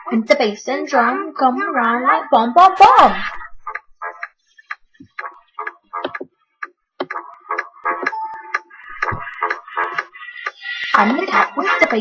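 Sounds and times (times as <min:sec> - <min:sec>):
woman's rhythmic mouth sounds: 0:03.1 - 0:12.0.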